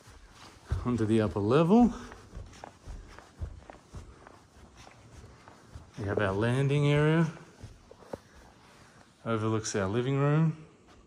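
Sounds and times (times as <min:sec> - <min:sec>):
footsteps on carpeted stairs: 0:00.0 - 0:11.0.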